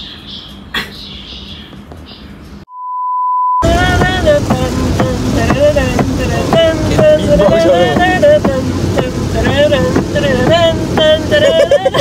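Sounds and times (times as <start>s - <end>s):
electronic beep tone: 2.7s - 3.6s
pop music with singing: 3.6s - 12.0s.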